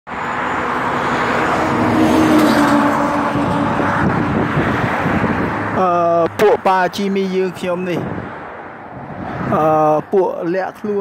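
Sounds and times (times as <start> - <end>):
engine hum: 0.1 - 10.1
road traffic rushing: 0.1 - 11.0
man speaking: 5.8 - 8.1, 9.5 - 11.0.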